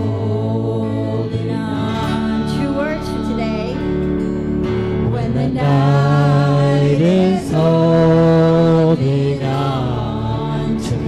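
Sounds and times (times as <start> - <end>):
person singing worship song: 0.0 - 4.1, 4.9 - 11.0.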